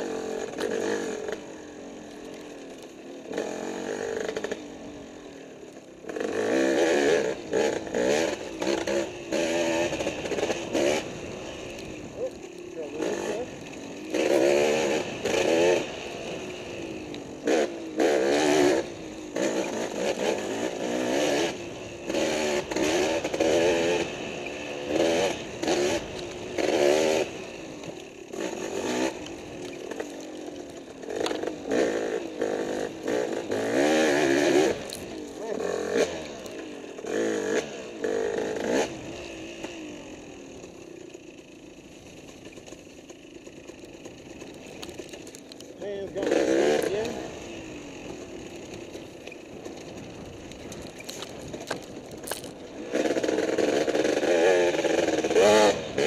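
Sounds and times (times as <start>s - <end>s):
dirt bike engine revving: 0.0s - 56.0s
bike knocks and rattles: 49.0s - 52.6s.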